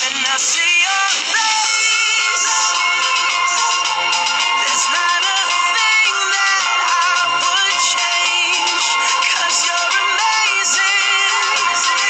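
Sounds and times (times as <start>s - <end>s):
recorded song with singer: 0.0s - 12.0s.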